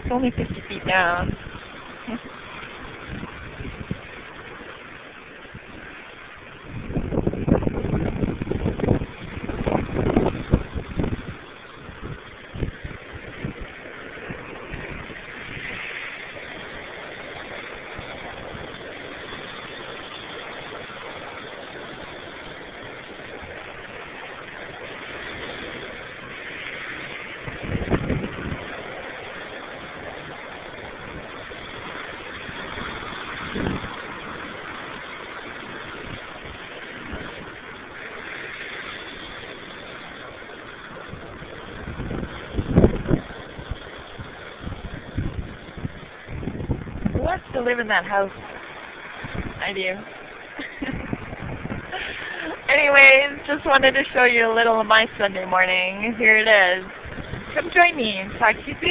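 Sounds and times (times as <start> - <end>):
low rumbles of surf: 0.0 - 58.9
ocean surf breaking on rocks: 0.0 - 58.9.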